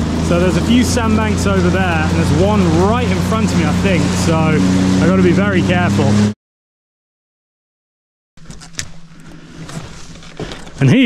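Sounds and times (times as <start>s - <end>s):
jet ski engine running: 0.0s - 6.4s, 8.4s - 11.0s.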